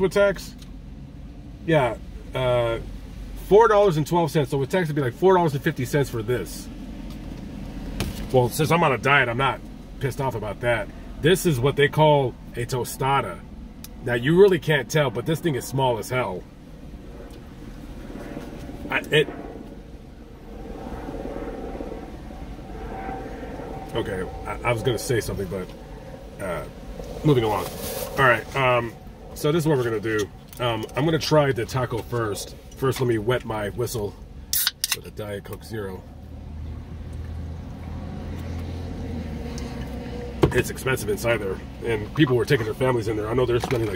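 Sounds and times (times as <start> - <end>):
faint higher hum: 0.0 - 43.9
low rumble inside car cabin: 0.0 - 43.9.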